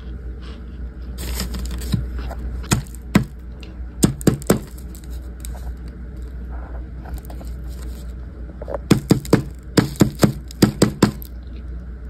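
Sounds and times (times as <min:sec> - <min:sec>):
cornstarch chunks crunching: 0:01.2 - 0:06.4, 0:08.8 - 0:11.6.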